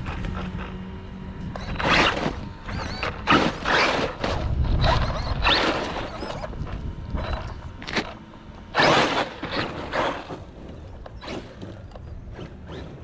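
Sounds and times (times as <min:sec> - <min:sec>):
high electric motor whine: 0:00.0 - 0:13.0
tyres scrabbling on dirt: 0:01.5 - 0:13.0.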